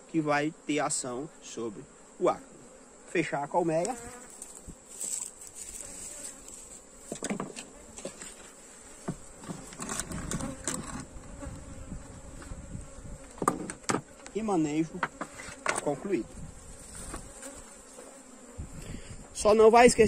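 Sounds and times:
bees buzzing: 0.0 - 20.0
scraping hive lid: 1.0 - 19.4
knocks on hive: 13.4 - 14.1.

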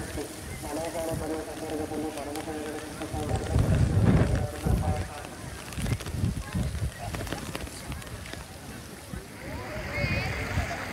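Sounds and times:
faint voices: 0.0 - 10.9
wind buffeting microphone: 0.0 - 10.9.

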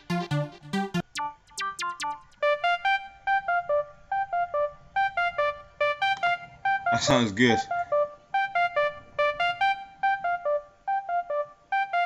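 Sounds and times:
synthesizer plucked melody: 0.0 - 12.0.

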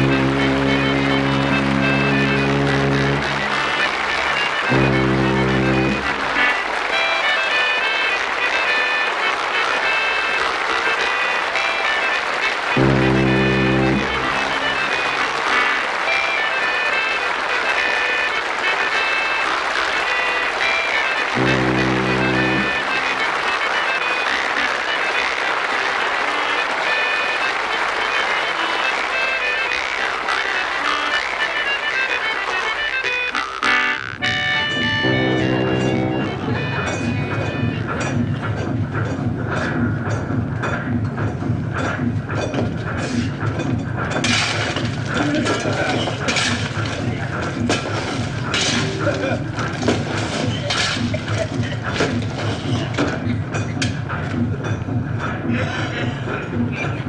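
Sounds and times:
steam engine chugging: 0.0 - 57.0
theme music: 0.0 - 57.0.

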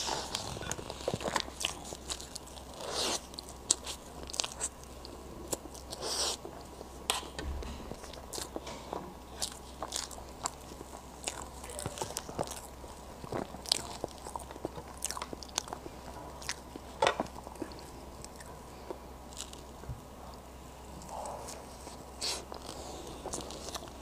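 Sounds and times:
person chewing cake: 0.0 - 24.0.

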